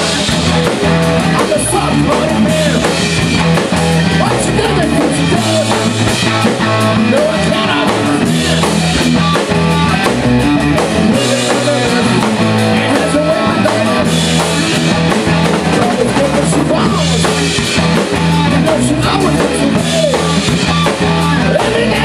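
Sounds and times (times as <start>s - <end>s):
bass line: 0.0s - 22.0s
distorted electric guitars: 0.0s - 22.0s
drum kit: 0.0s - 22.0s.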